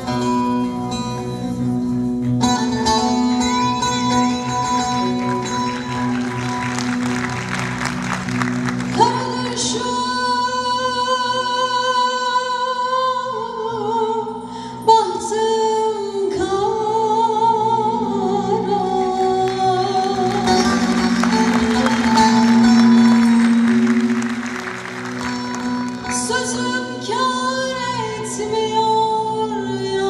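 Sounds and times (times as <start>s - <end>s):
band accompaniment: 0.0s - 9.5s, 19.6s - 26.8s
woman singing: 8.9s - 21.4s, 26.0s - 30.0s.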